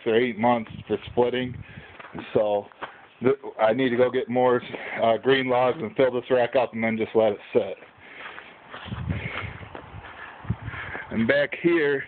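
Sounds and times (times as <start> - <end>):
footsteps outdoors: 0.0 - 12.0.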